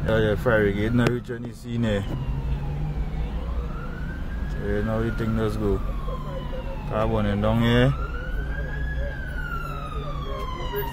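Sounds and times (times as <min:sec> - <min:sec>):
faint siren wailing: 0:00.0 - 0:10.9.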